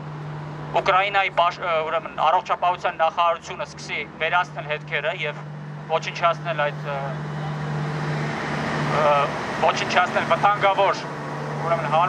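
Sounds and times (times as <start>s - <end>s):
vehicle passing: 0.0s - 12.0s
man speaking through megaphone: 0.8s - 7.2s, 9.0s - 12.0s.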